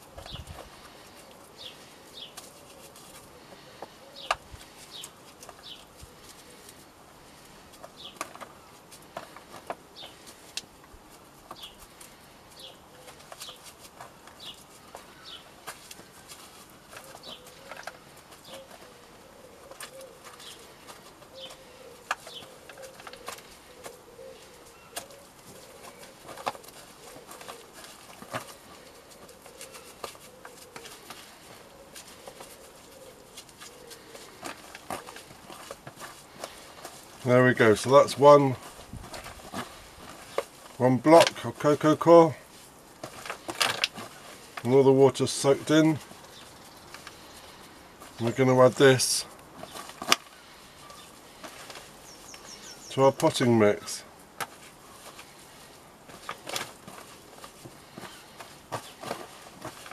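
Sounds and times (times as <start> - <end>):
birds chirping: 0.0 - 59.9
fingers crumbling wet coir: 0.0 - 59.9.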